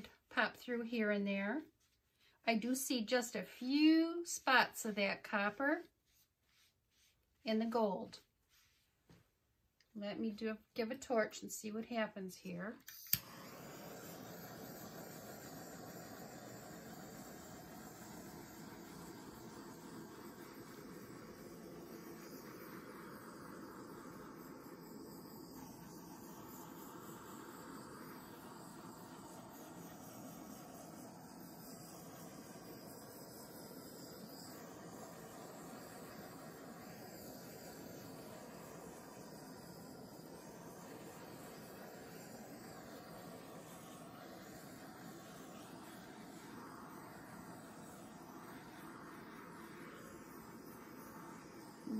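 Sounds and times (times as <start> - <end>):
butane torch clicking alight: 12.8 - 51.9
torch flame hissing: 12.8 - 51.9.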